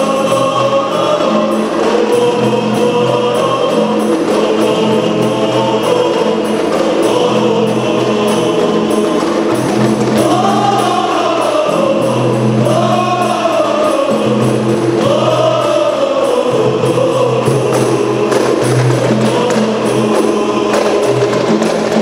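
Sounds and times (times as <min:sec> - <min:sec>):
frame drums beating: 0:00.0 - 0:22.0
men singing together: 0:00.0 - 0:22.0.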